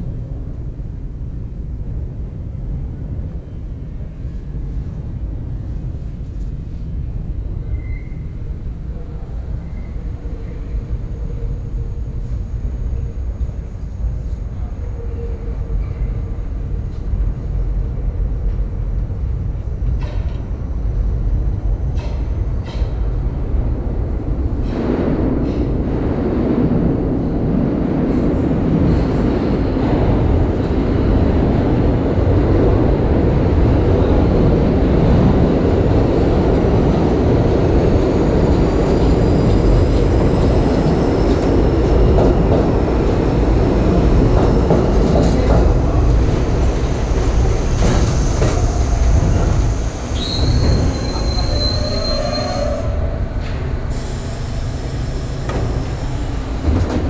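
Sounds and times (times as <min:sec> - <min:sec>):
subway train wheels rumbling: 0:00.0 - 0:57.0
high brake squeal: 0:07.7 - 0:08.3, 0:48.2 - 0:53.2.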